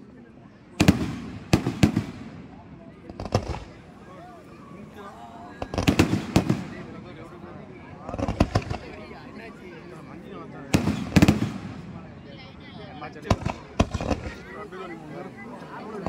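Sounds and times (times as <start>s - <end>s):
fireworks bangs: 0.8s - 4.0s, 5.6s - 7.1s, 8.0s - 9.2s, 10.7s - 12.0s, 13.2s - 14.7s.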